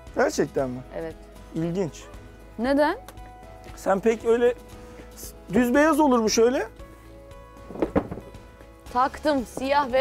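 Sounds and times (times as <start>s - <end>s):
soft background music: 0.0s - 10.0s
rolled rug thump and rustle: 7.6s - 8.4s.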